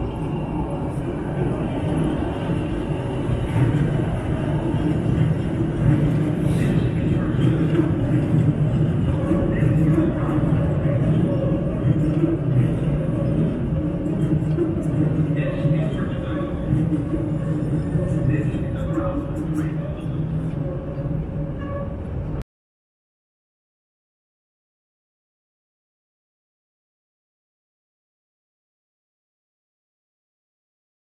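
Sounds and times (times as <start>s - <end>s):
elevated train rumbling on track: 0.0s - 22.4s.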